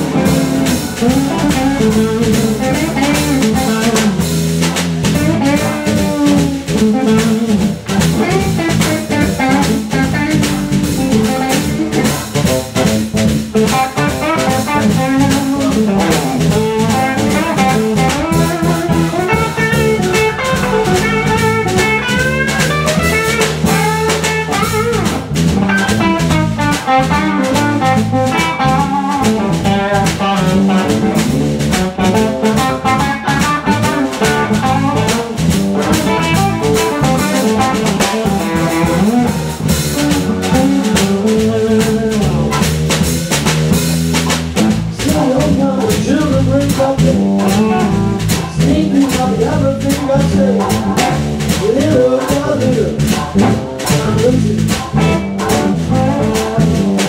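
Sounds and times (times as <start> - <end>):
bass guitar: 0.0 - 57.0
drum kit beat: 0.0 - 57.0
electric guitar: 0.0 - 57.0.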